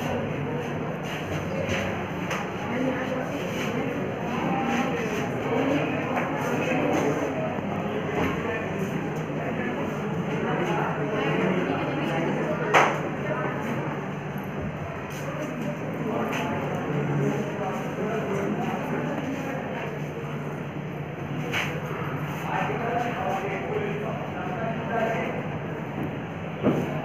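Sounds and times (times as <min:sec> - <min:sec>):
children chattering: 0:00.0 - 0:25.8.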